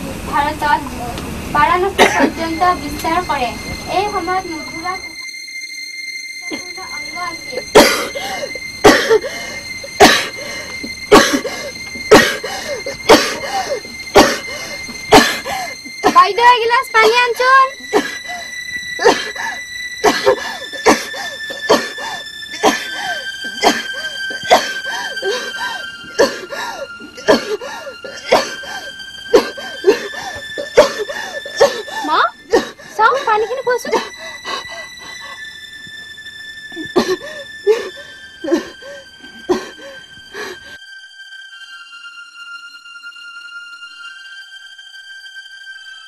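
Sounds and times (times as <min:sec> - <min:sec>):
high droning music tone: 0:00.0 - 0:46.0
person coughing: 0:02.0 - 0:02.5, 0:07.5 - 0:09.3, 0:10.0 - 0:10.4, 0:11.1 - 0:14.5, 0:15.1 - 0:16.2, 0:17.9 - 0:18.2, 0:19.0 - 0:25.4, 0:26.2 - 0:26.6, 0:27.2 - 0:34.2, 0:36.8 - 0:37.9, 0:39.5 - 0:39.8.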